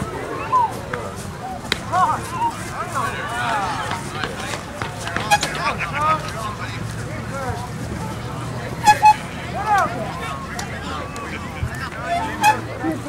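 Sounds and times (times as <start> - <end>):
spectators chattering and calling out: 0.0 - 13.0.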